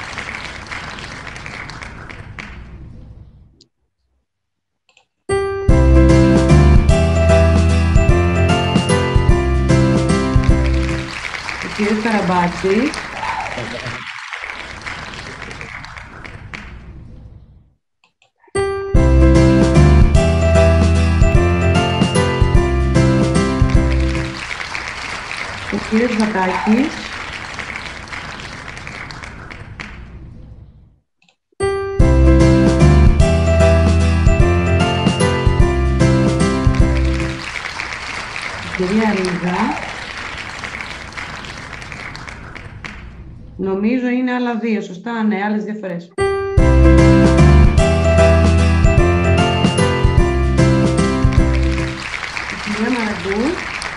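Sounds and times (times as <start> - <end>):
applause: 0.0 - 2.9, 10.0 - 17.0, 23.2 - 30.3, 36.3 - 43.3, 50.8 - 53.9
vocal whoop: 13.1 - 14.0.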